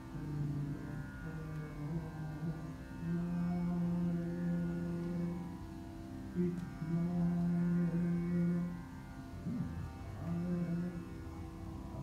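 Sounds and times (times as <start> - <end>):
man singing long low note: 0.0 - 5.7, 6.3 - 12.0.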